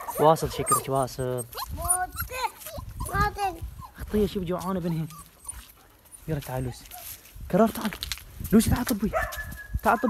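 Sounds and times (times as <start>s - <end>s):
puppy whining: 0.0s - 7.0s.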